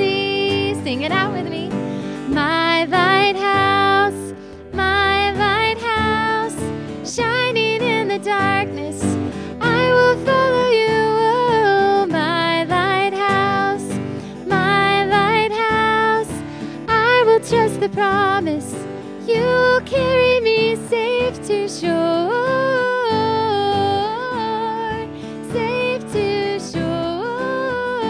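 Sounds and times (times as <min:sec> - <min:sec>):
acoustic guitar: 0:00.0 - 0:28.0
woman singing into a microphone: 0:00.0 - 0:28.0.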